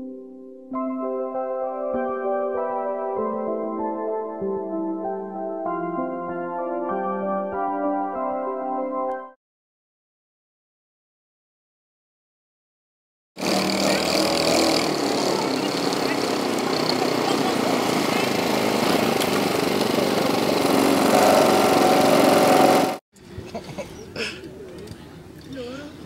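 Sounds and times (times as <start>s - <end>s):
go-kart engines running: 13.4s - 23.0s
people's voices: 13.5s - 21.1s.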